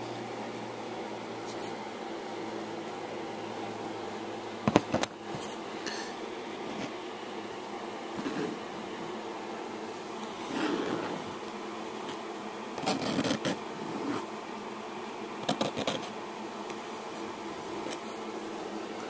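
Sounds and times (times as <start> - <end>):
steady hum: 0.0 - 19.0.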